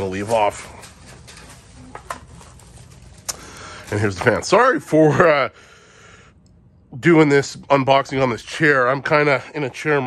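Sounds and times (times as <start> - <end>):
plastic packaging handled: 0.0 - 4.6
low steady hum: 0.0 - 10.0.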